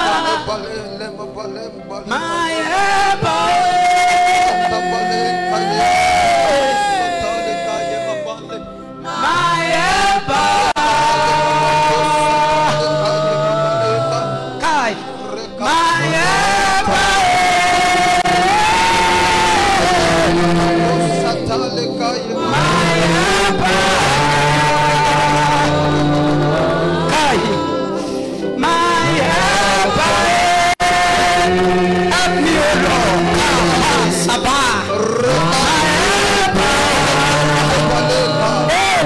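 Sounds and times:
man singing through microphone: 0.0s - 39.0s
sustained accompaniment: 0.0s - 39.0s.

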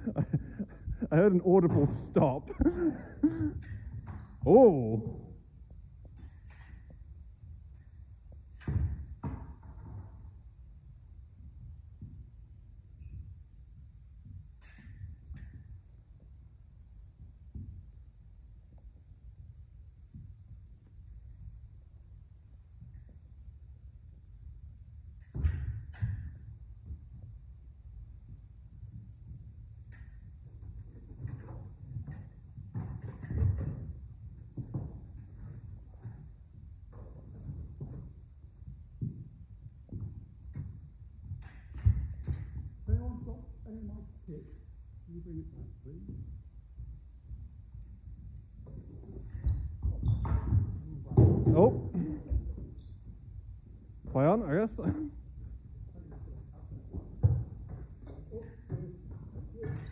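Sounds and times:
footsteps on wooden floor: 0.1s - 3.5s.

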